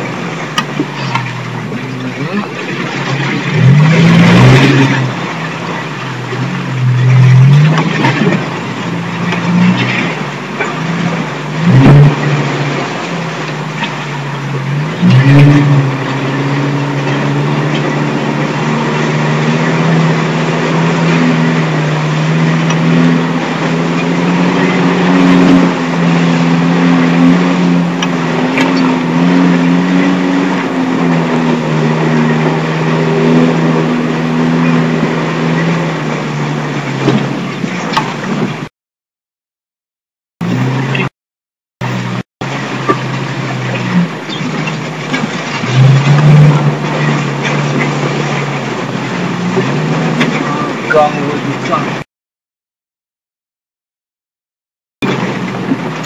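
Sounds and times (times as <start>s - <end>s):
off-road vehicle engine: 0.0s - 38.7s, 40.4s - 41.2s, 41.8s - 52.1s, 55.0s - 56.0s.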